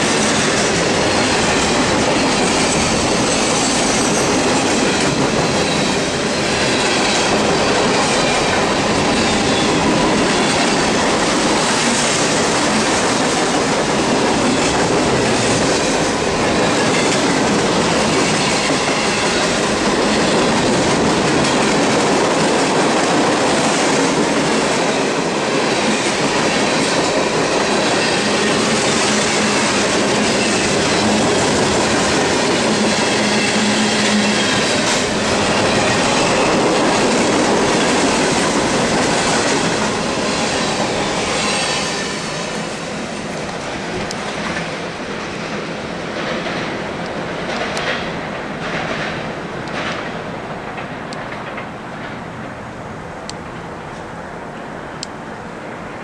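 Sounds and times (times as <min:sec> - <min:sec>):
wheels clacking over rail joints: 0:00.0 - 0:52.7
freight train cars rolling: 0:00.0 - 0:56.0.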